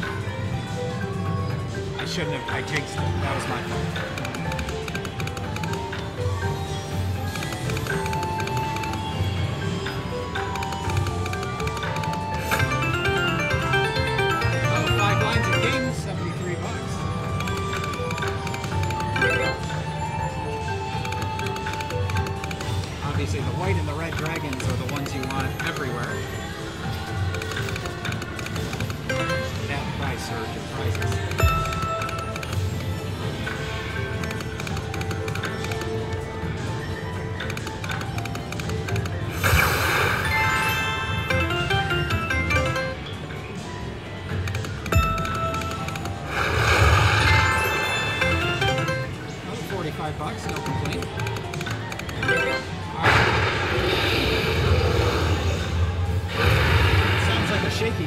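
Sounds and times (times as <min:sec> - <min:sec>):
slot machine game music: 0:00.0 - 0:58.0
slot machine win sounds: 0:00.0 - 0:58.0.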